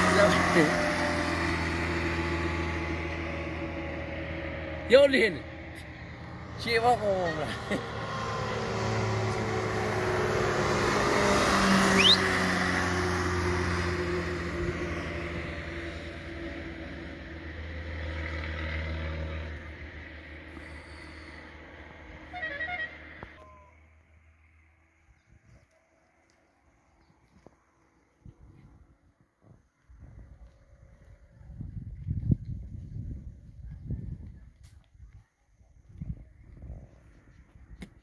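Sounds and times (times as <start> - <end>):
vehicle passing on road: 0.0 - 34.5
car horn toot: 22.3 - 23.7.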